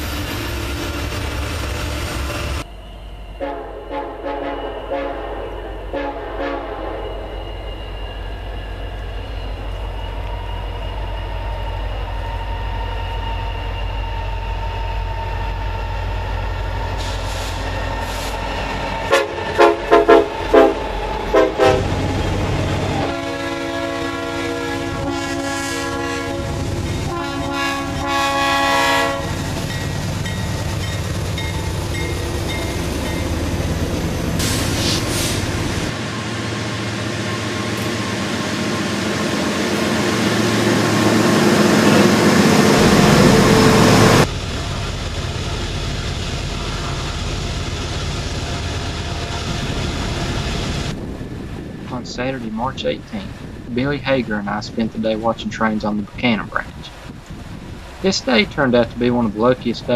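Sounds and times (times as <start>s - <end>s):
locomotive approaching: 0.0s - 59.9s
passing freight train: 0.0s - 59.9s
multi-chime train horn: 3.3s - 8.8s, 19.1s - 22.0s, 23.0s - 30.4s.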